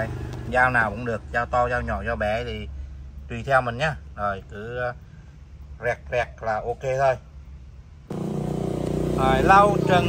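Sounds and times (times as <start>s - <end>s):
background traffic noise: 0.0s - 10.0s
engine hum: 0.0s - 10.0s.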